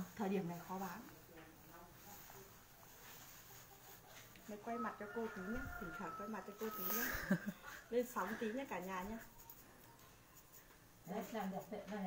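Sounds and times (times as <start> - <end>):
woman speaking: 0.0 - 1.3, 4.5 - 9.3, 11.0 - 12.0.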